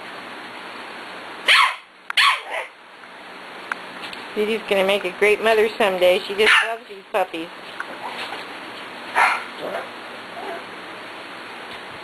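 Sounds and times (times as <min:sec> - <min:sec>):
dog barking: 0:01.5 - 0:02.7, 0:06.4 - 0:06.7, 0:09.1 - 0:10.6.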